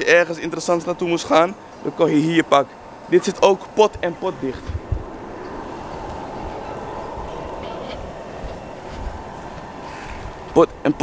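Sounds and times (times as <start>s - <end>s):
low urban rumble: 0.0s - 11.0s.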